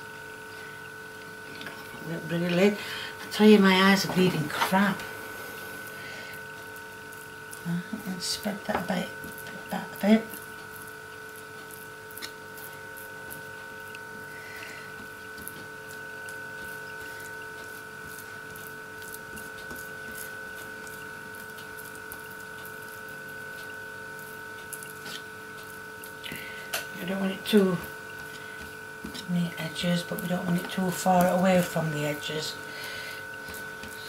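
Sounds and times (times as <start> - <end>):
high-pitched electrical whine: 0.0 - 34.0.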